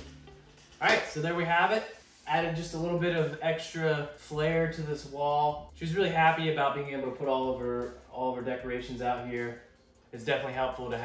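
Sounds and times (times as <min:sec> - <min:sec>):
background music: 0:00.0 - 0:11.0
man speaking: 0:00.8 - 0:11.0.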